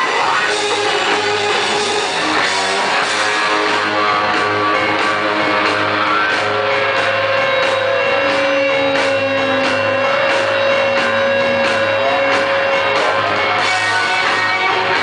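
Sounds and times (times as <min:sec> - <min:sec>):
rock and roll band playing: 0:00.0 - 0:15.0.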